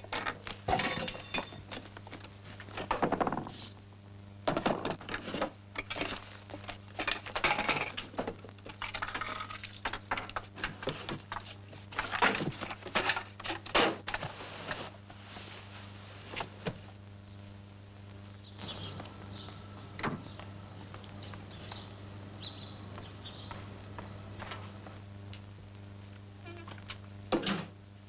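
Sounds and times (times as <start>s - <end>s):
objects being handled and shifted: 0.0s - 3.8s, 4.5s - 17.0s
steady low hum: 0.0s - 28.0s.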